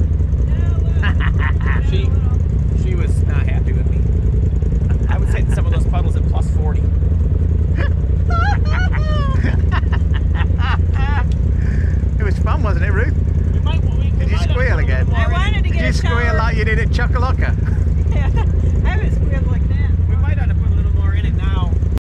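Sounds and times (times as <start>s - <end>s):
vehicle engine idling: 0.0s - 22.0s
people talking: 0.5s - 4.0s, 4.9s - 6.8s, 7.8s - 21.8s.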